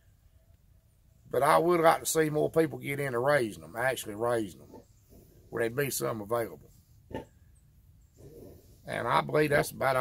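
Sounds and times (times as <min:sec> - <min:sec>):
low animal sound: 0:04.4 - 0:09.4
person talking: 0:08.8 - 0:10.0.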